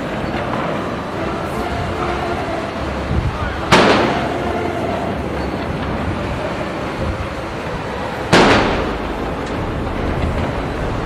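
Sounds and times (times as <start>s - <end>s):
outdoor background noise: 0.0s - 11.0s
gun firing bang: 3.7s - 4.3s, 8.3s - 9.2s.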